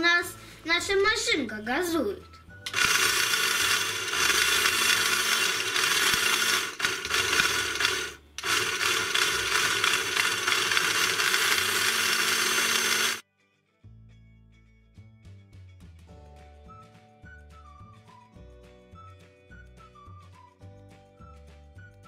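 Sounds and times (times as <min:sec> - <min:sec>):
toy car motor whirring: 0:02.7 - 0:13.2.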